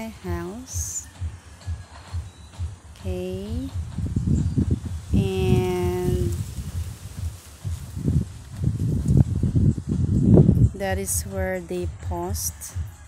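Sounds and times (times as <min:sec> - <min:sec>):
wind buffeting microphone: 0:02.2 - 0:12.9.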